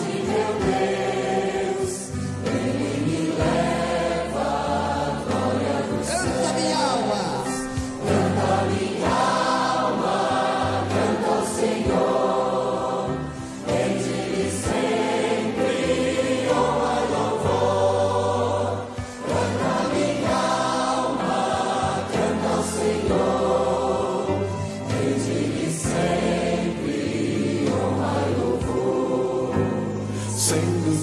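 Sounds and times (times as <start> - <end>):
choir and congregation singing hymn: 0.0 - 31.0
instrumental accompaniment with bass: 0.0 - 31.0.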